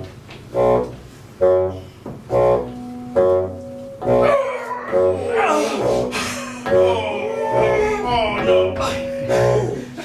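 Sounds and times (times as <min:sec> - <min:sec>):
men chanting rhythmically: 0:06.7 - 0:09.9.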